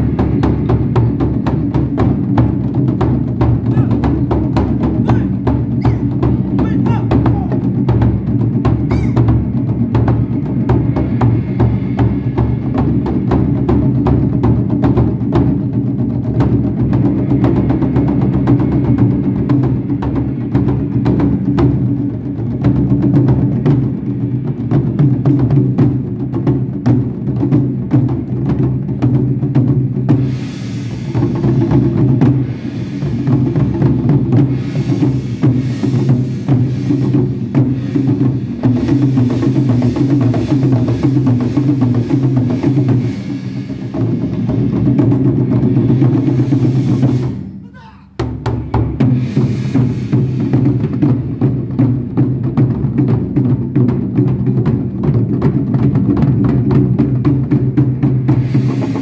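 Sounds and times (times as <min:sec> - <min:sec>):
taiko drums ensemble: 0:00.0 - 0:59.0.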